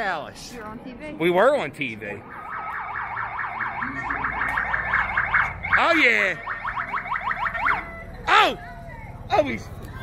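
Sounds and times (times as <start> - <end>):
fast electronic siren warbling: 2.3 - 8.1.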